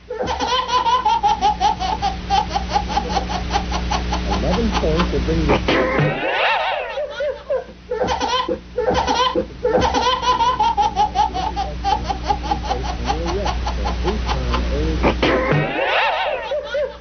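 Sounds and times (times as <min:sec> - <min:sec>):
baby laughing hard: 0:00.1 - 0:17.0.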